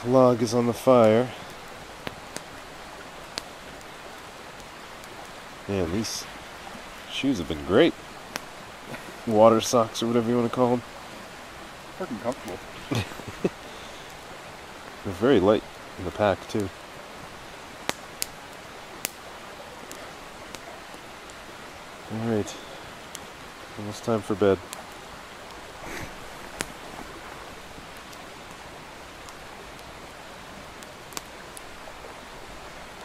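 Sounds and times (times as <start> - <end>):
campfire hissing: 0.0 - 33.0
sharp fire crackle: 0.0 - 33.0.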